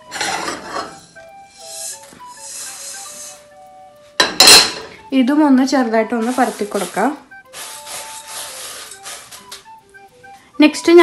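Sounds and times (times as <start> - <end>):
seeds rustling on steel plate: 5.8 - 9.8.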